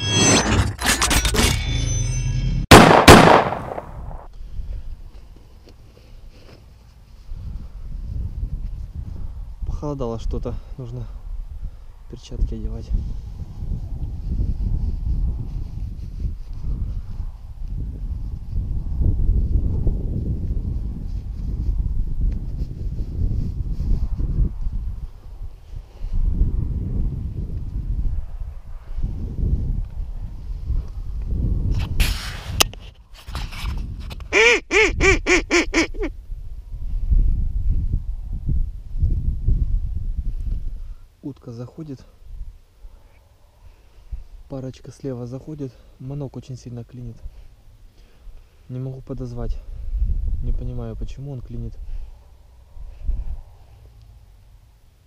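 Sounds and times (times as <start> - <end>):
wind buffeting microphone: 7.2 - 41.0, 42.2 - 42.9, 49.1 - 53.8
duck call quacks: 34.3 - 36.1.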